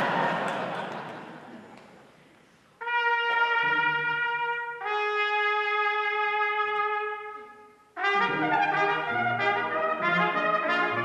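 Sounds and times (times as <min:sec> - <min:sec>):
audience laughter: 0:00.0 - 0:01.8
solo trumpet notes: 0:02.8 - 0:11.0.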